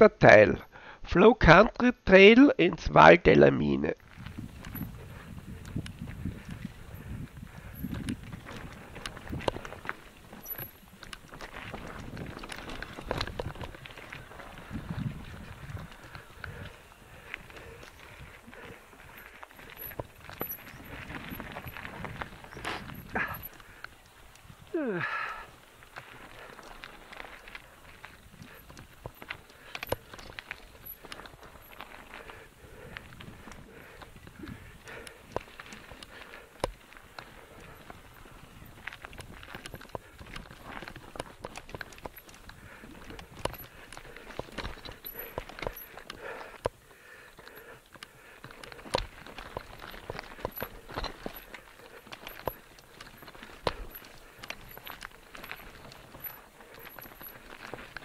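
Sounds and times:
bike tyres on dirt and gravel: 3.2 - 58.0
bike rattling: 4.0 - 58.0.

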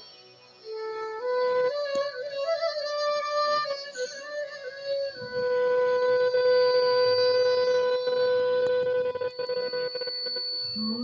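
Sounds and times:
flute holding long note: 0.0 - 11.0.

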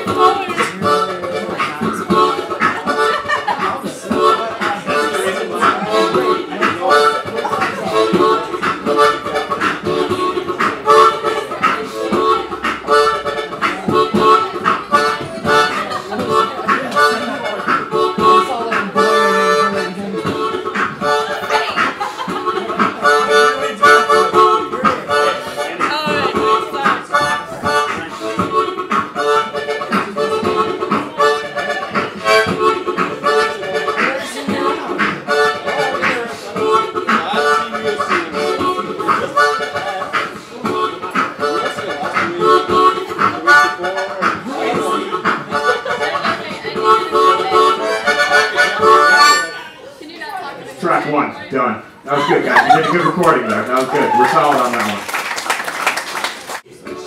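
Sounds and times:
harmonica beatboxing: 0.0 - 49.8, 51.9 - 55.0, 56.5 - 57.0.

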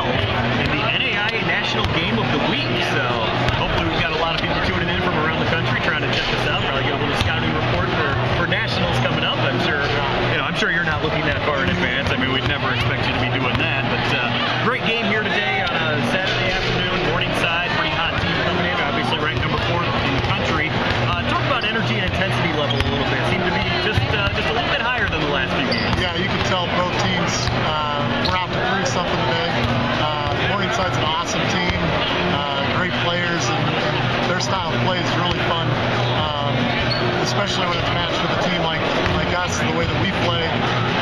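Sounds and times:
crowd chatter: 0.0 - 41.0
hall background noise: 0.0 - 41.0
people talking: 0.0 - 41.0.

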